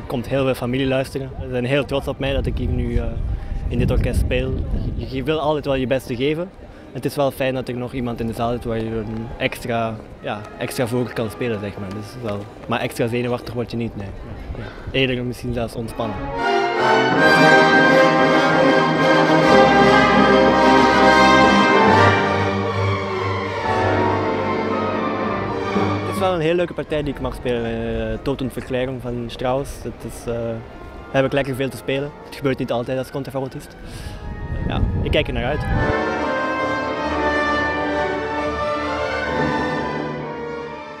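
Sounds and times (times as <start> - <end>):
orchestra playing sustained chords: 8.1 - 12.5, 15.6 - 41.0.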